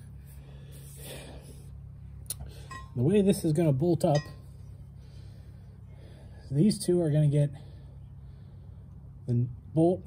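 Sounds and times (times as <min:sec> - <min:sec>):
low hum: 0:00.0 - 0:10.0
soft breath near microphone: 0:07.5 - 0:09.1.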